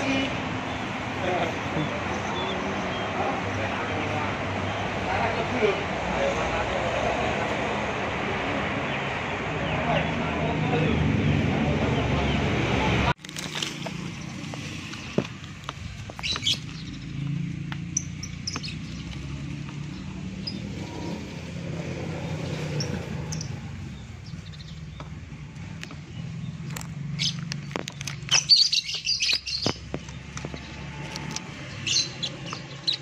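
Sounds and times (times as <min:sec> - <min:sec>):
birds chirping: 0:00.0 - 0:33.0.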